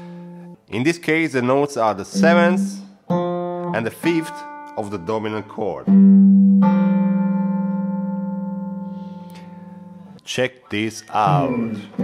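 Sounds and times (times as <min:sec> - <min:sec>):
electric guitar note bending: 0:02.1 - 0:10.2.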